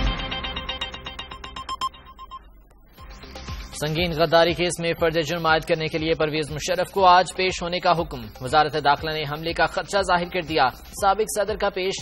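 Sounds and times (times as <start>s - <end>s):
bright electronic pings: 0.0s - 3.4s
news theme music: 0.0s - 12.0s.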